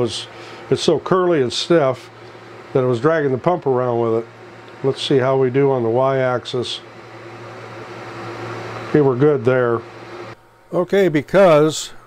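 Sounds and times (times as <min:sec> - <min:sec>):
laser engraver motor hum: 0:00.0 - 0:12.0.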